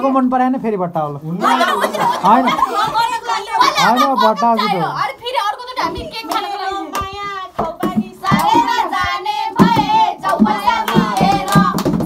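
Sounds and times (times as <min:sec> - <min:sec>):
young voices singing together: 0:01.4 - 0:12.0
hands clapping: 0:05.8 - 0:12.0.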